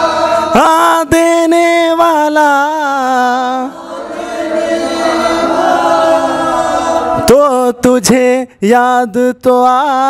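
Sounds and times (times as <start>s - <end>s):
voices singing unaccompanied: 0.0s - 1.2s, 2.4s - 8.2s.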